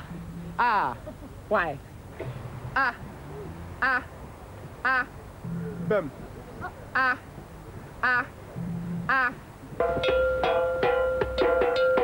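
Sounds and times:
soft voices: 2.2 - 9.5
drumming: 9.8 - 12.0.

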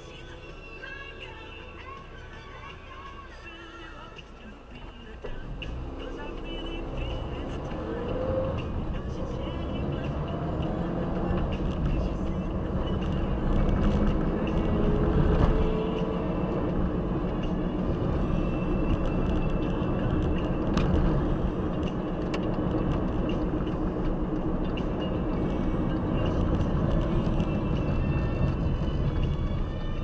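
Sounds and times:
road noise inside car: 0.0 - 30.0
car engine accelerating: 5.3 - 30.0.

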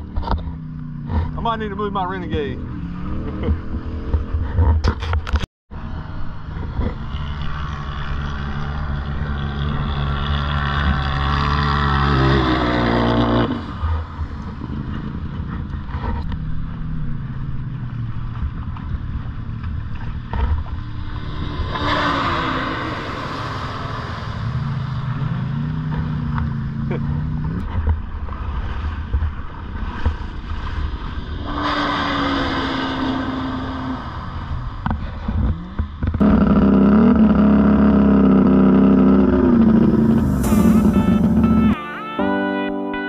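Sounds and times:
atv engine revving: 0.0 - 4.9, 6.7 - 18.4, 19.1 - 27.8, 35.3 - 41.8
rush of noise: 20.6 - 25.7, 39.0 - 41.9.

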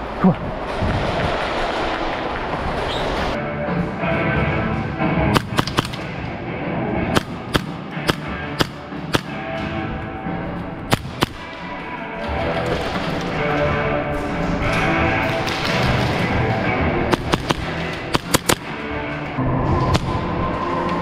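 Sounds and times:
background music: 3.3 - 21.0
airsoft gun cracks: 5.4 - 6.1.

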